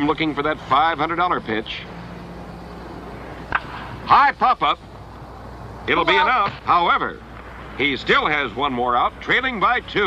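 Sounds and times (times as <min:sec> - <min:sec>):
old film soundtrack hum and hiss: 0:00.0 - 0:10.0
baseball bat hitting ball: 0:03.5 - 0:04.0.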